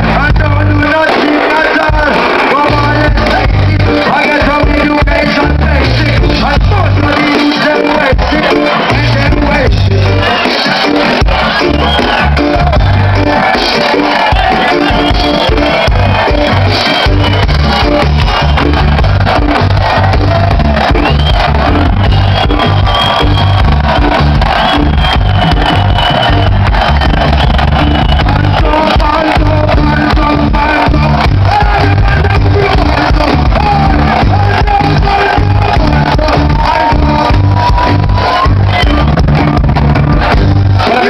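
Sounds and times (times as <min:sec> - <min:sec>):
heavy pulsing bass: 0:00.0 - 0:07.4, 0:08.0 - 0:10.3, 0:11.0 - 0:41.0
live reggae band playing: 0:00.0 - 0:41.0.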